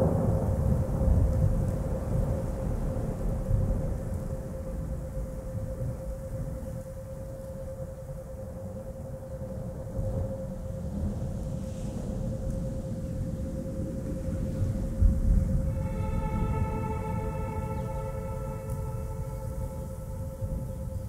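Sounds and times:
low rumble of thunder: 0:00.0 - 0:21.0
steady pure tone: 0:00.0 - 0:21.0.

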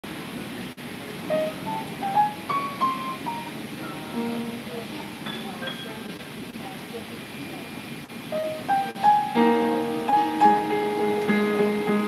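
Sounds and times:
low murmur: 0:00.1 - 0:12.0
piano melody: 0:01.2 - 0:06.0, 0:08.3 - 0:12.0.

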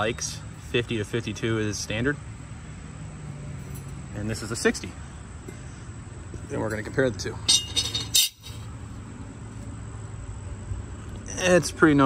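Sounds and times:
sharp high clink: 0:07.5 - 0:08.6.

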